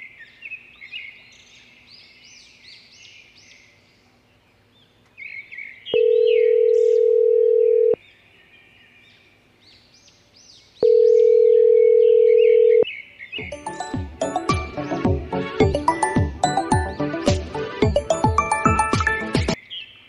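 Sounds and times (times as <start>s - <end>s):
birds chirping: 0.0s - 7.4s, 8.0s - 20.0s
telephone ringing tone: 6.0s - 8.0s, 10.8s - 12.8s.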